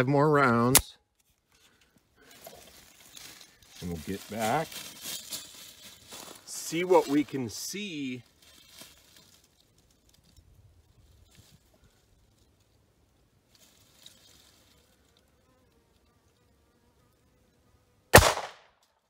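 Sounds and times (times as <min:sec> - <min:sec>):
pistol shot: 0:18.1 - 0:18.8.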